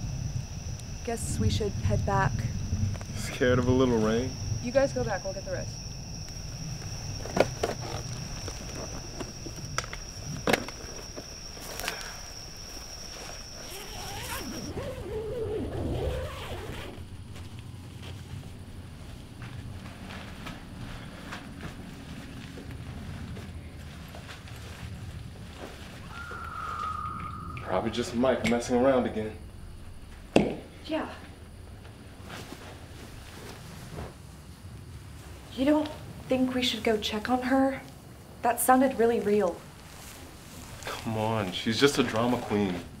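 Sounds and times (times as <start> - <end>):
low background rumble: 0.0 - 26.0
crickets chirring: 0.0 - 43.0.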